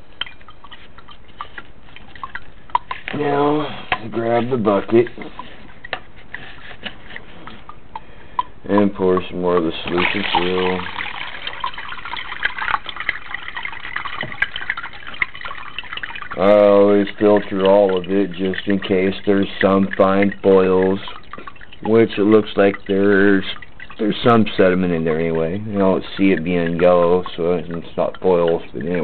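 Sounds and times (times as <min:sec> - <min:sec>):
liquid dripping through filter: 0:00.0 - 0:29.0.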